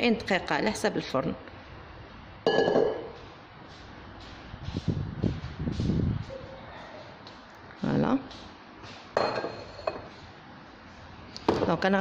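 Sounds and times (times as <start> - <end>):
metal kitchenware clinking: 2.5 - 3.2, 9.2 - 10.1.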